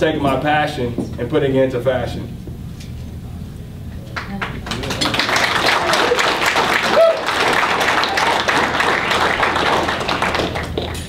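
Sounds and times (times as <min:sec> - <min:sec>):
audience applauding: 0:04.2 - 0:11.0.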